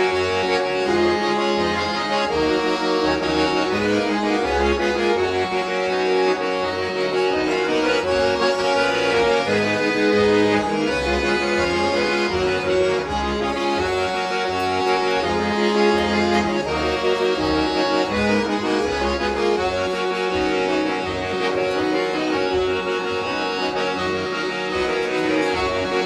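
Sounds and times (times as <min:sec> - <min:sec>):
accordions playing a tune: 0:00.0 - 0:26.0.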